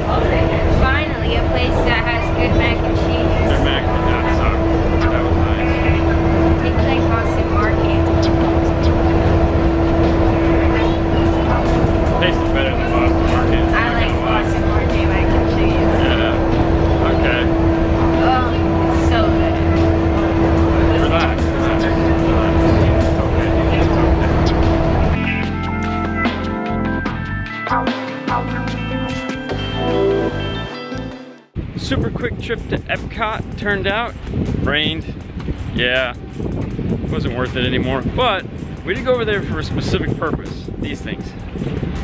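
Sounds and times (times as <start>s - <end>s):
people talking: 0.0s - 8.2s, 10.0s - 25.0s, 31.8s - 35.2s, 35.8s - 36.2s, 37.1s - 41.3s
monorail electric hum: 0.0s - 27.3s, 31.6s - 42.0s
music: 0.0s - 42.0s.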